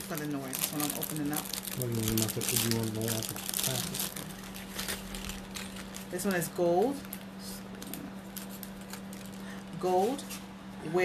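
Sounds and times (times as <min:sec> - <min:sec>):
packaging crinkling and rustling: 0:00.0 - 0:09.6.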